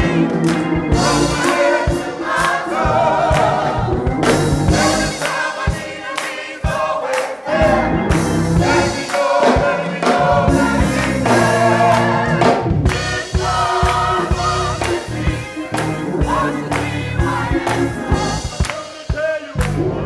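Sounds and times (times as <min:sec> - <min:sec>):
steady beat: 0:00.0 - 0:19.9
choir singing gospel: 0:00.0 - 0:20.0.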